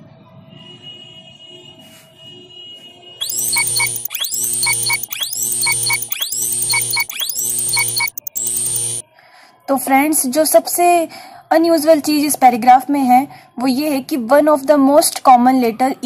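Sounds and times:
short electronic beeps: 3.2 - 9.0
faint background music: 9.2 - 16.0.

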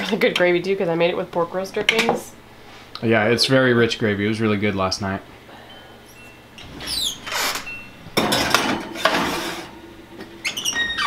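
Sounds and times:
short squeaks: 6.3 - 8.0, 10.4 - 11.0
glass dish scraping on metal rack: 6.6 - 9.8
oven door opening: 6.6 - 11.0.

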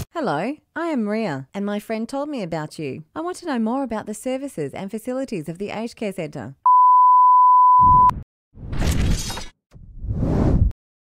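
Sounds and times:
steady beep tone: 6.7 - 8.2.

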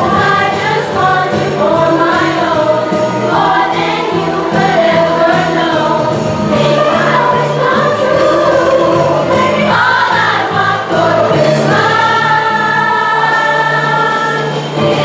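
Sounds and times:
children's choir singing: 0.0 - 15.0.

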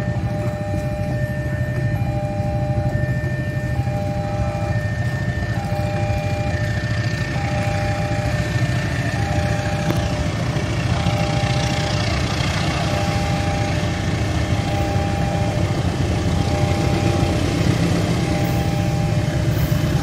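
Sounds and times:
level crossing alarm tones: 0.0 - 20.0
low engine rumble: 0.0 - 20.0.

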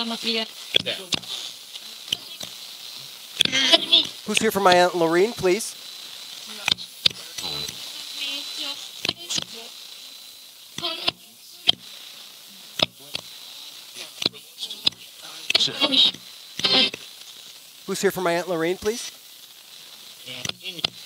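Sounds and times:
snatches of broadcast voice: 0.0 - 5.8, 6.5 - 9.7, 10.8 - 11.8, 12.6 - 17.1, 17.9 - 19.1, 20.2 - 21.0
radio static hiss: 0.0 - 21.0
radio sharp clicks: 0.8 - 5.4, 6.6 - 7.9, 8.8 - 9.6, 10.7 - 12.1, 12.8 - 17.4.

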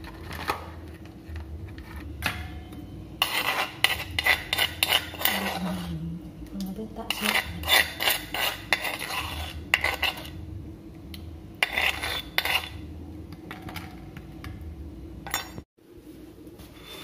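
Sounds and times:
spoon scraping bowl: 0.0 - 2.2, 3.2 - 6.1, 7.0 - 10.4, 11.6 - 12.9
spoon clinking metal bowl: 15.2 - 15.6.

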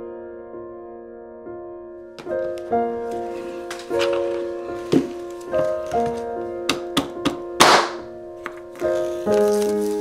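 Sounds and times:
instrumental background music: 1.7 - 10.0
plastic film crackling tear: 7.6 - 10.0.

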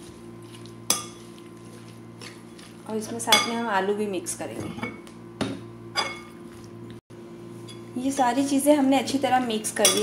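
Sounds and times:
spoon stirring wet mix: 0.0 - 3.5.

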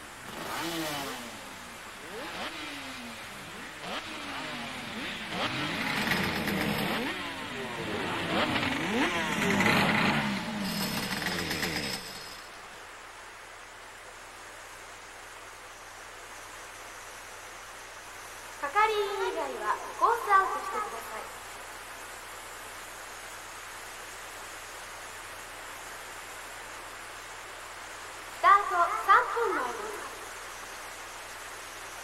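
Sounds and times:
motorcycle engines revving: 0.0 - 12.6
heavy rain hissing: 0.0 - 32.0.

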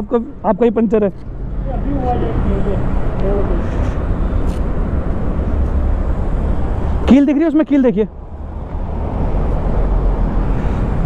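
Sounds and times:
traffic rumble: 0.0 - 11.0
wind: 0.0 - 11.0.

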